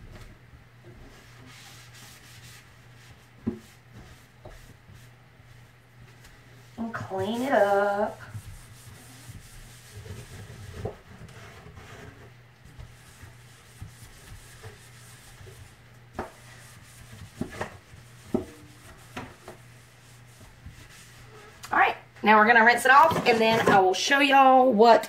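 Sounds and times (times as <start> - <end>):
sponge scrubbing metal sink: 0.9 - 21.9.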